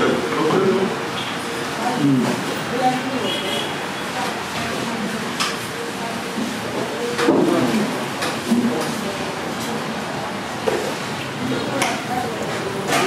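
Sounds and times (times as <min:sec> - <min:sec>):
indistinct talking: 0:00.0 - 0:13.0.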